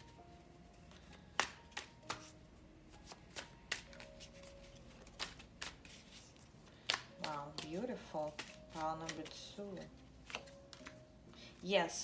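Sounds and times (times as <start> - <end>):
cards being shuffled: 0.9 - 11.0
card taps and slaps: 1.3 - 2.4, 3.0 - 4.2, 5.1 - 9.4, 10.2 - 11.0.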